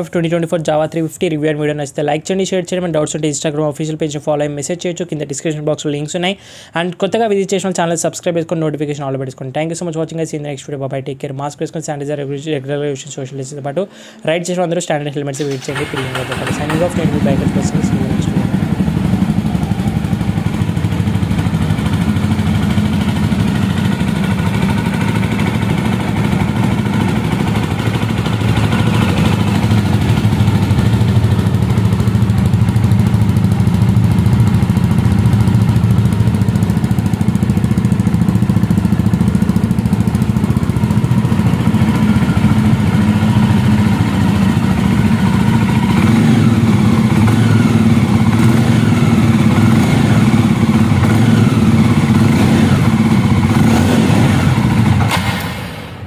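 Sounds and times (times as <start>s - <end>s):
motorcycle engine idling: 15.4s - 55.4s.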